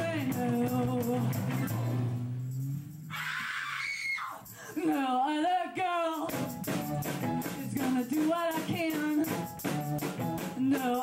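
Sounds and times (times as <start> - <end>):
live band playing: 0.0 - 3.1, 6.2 - 11.0
woman screaming cry: 3.1 - 4.5
woman singing with vibrato: 4.4 - 6.3.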